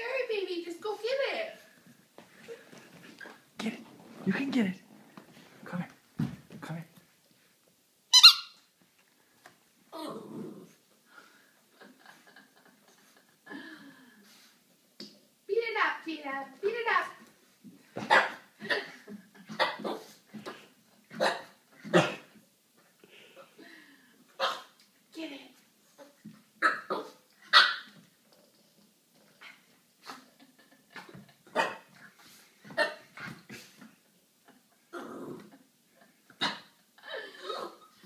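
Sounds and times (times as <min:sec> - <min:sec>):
squeaky dog toy squeaking: 0:08.1 - 0:08.7
puppy barking: 0:26.6 - 0:27.9.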